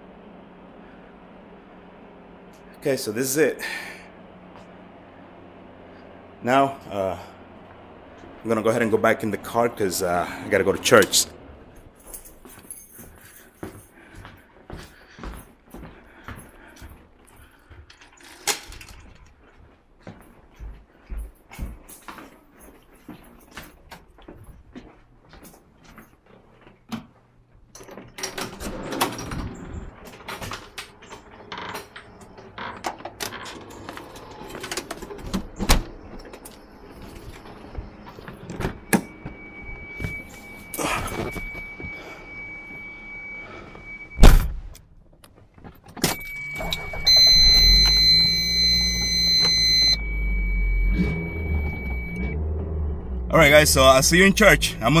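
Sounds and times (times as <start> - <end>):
keys jingling: 11.7 - 14.2
footsteps: 11.8 - 18.2, 19.0 - 27.3
car warning chime: 38.8 - 44.2, 46.1 - 52.4, 53.3 - 55.0
car door slamming: 44.2 - 44.7
car engine starting and idling: 46.0 - 55.0.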